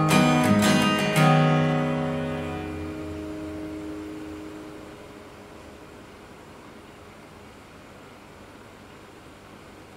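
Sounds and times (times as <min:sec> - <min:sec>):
acoustic guitar chord ringing: 0:00.0 - 0:06.8
faint hiss: 0:00.0 - 0:09.9.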